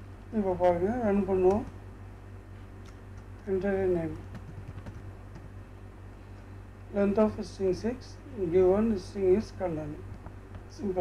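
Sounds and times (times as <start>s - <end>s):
low steady hum: 0.0s - 11.0s
computer keyboard typing: 4.2s - 5.5s.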